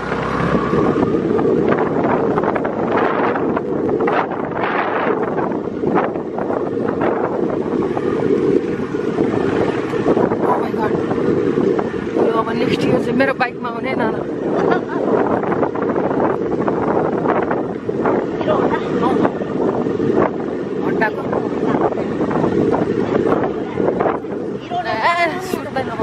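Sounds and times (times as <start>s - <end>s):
road noise on dirt track: 0.0s - 26.0s
wind buffeting microphone: 0.0s - 26.0s.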